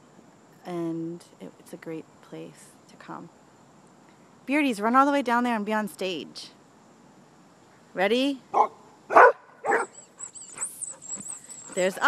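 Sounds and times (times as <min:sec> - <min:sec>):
dog barking: 0:08.5 - 0:10.0.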